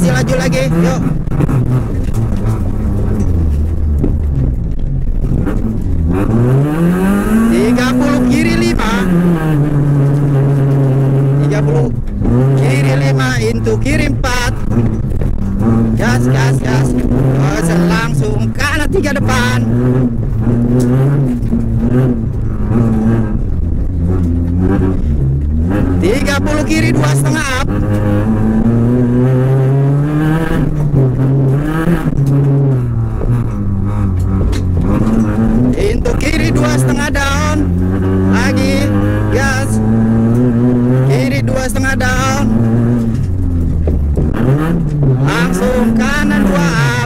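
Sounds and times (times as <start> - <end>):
car engine revving inside cabin: 0.0 - 47.0.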